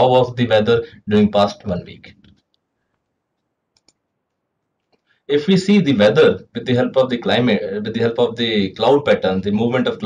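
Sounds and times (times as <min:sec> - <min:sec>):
faint quick clicks: 0:02.2 - 0:05.1.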